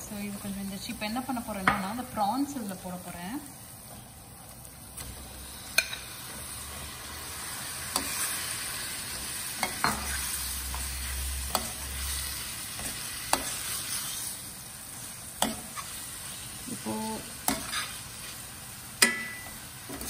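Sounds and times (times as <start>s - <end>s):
prawns sizzling in hot oil: 0.0s - 20.0s
metal spoon clinking on pan: 19.0s - 19.6s.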